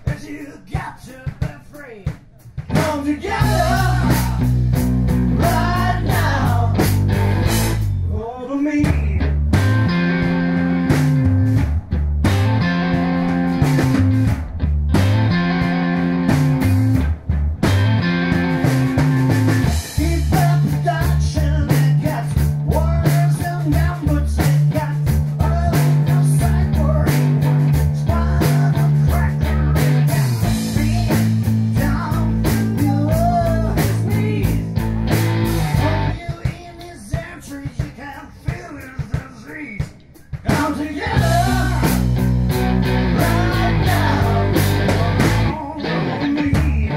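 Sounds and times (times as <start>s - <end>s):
drum kit: 0.0s - 8.0s, 8.8s - 46.9s
electric guitar: 2.6s - 8.0s, 9.2s - 36.4s, 40.5s - 46.9s
electric bass: 2.6s - 36.2s, 40.5s - 46.9s.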